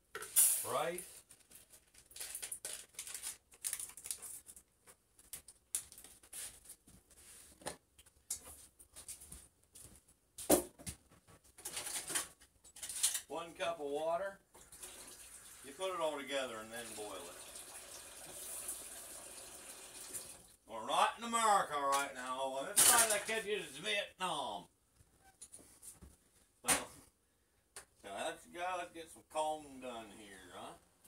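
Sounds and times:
person speaking: 20.7 - 24.7
cookware and utensils clattering: 22.7 - 23.3.

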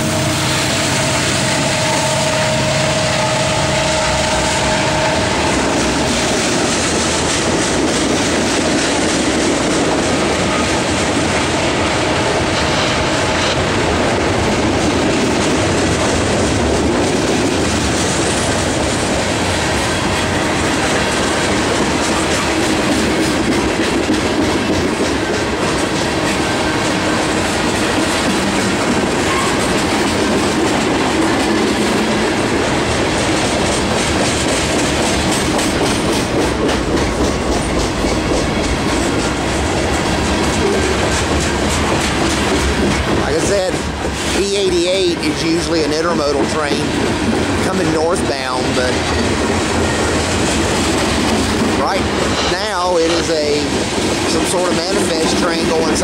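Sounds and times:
train wheels rumbling on rail: 0.0 - 56.0
wheels clacking over rail joints: 0.0 - 56.0.

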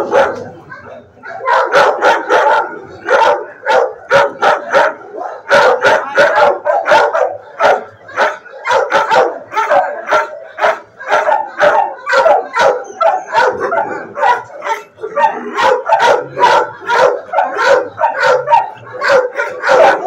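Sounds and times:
dogs barking: 0.0 - 20.0
dogs yipping: 0.0 - 20.0.

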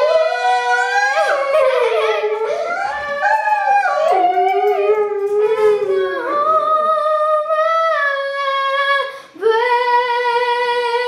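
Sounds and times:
dog howling: 0.0 - 7.0
girl singing: 0.0 - 11.0.

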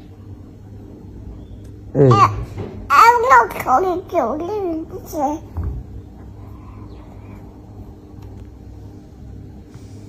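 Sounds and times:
faint steady hum: 0.0 - 10.0
low background rumble: 0.0 - 10.0.

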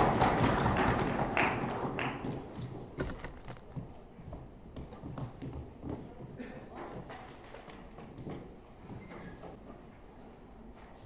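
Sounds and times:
footsteps on a stage: 0.4 - 9.9.

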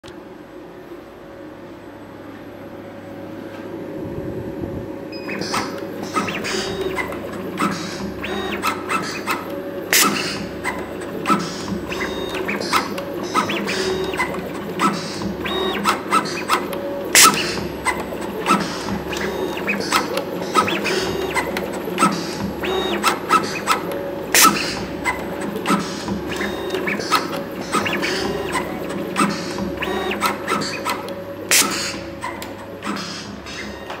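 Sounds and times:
wire stripping machine humming: 2.9 - 34.0
loud snap: 8.9 - 10.4, 31.5 - 32.0.

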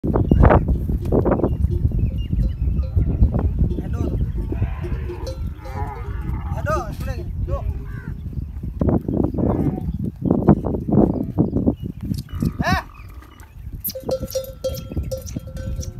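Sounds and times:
voices: 2.8 - 8.2
quick chirping calls: 11.8 - 15.9.

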